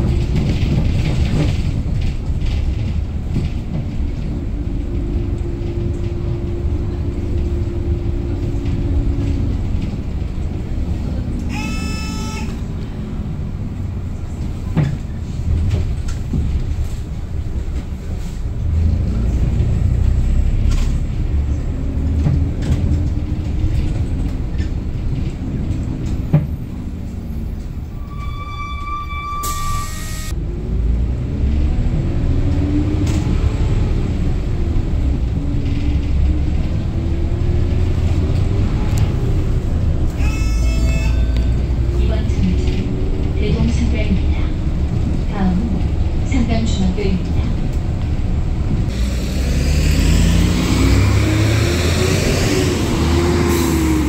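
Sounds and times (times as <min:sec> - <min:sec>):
bus engine rumbling: 0:00.0 - 0:54.0.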